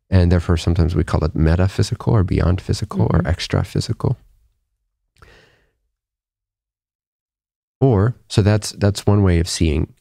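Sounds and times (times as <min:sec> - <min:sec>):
spoken word: 0:02.2 - 0:04.2
man breathing: 0:05.2 - 0:05.8.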